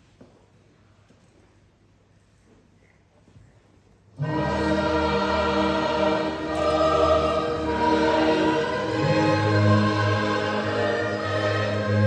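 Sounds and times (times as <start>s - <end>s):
slow choir-like music: 4.2s - 12.0s.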